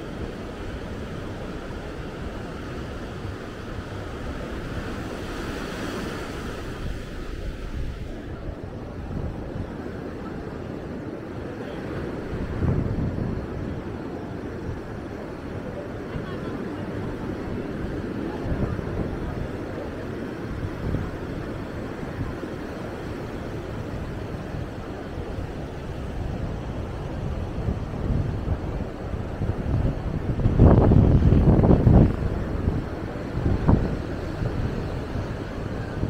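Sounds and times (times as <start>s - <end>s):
ocean surf on sandy beach: 0.0s - 36.0s
wind buffeting microphone: 0.0s - 36.0s.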